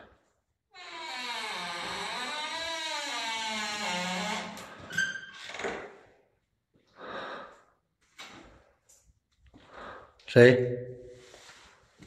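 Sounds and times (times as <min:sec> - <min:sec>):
door hinges creaking: 0:00.8 - 0:06.0.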